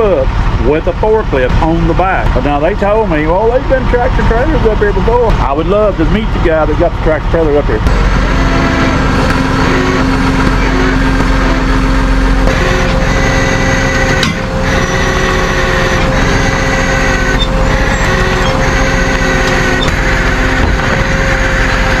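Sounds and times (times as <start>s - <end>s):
engine whine: 0.0s - 22.0s
truck engine running: 0.0s - 22.0s.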